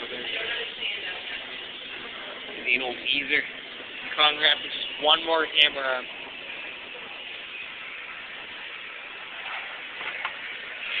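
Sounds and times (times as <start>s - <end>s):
restaurant room ambience hiss: 0.0s - 11.0s.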